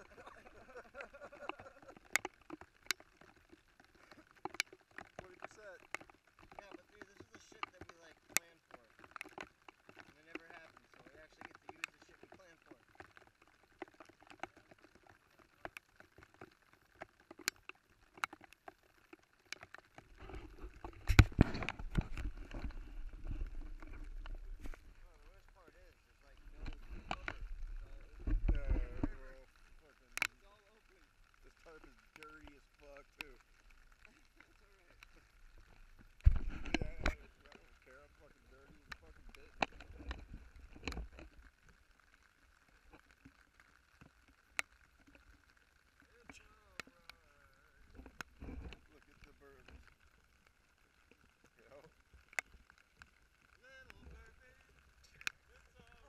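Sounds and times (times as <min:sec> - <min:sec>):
sharp clicks and knocks: 0:01.4 - 0:25.5
faint voices: 0:24.6 - 0:40.9, 0:46.0 - 0:49.9, 0:53.6 - 0:56.0
low rumbling bumps: 0:26.2 - 0:29.9.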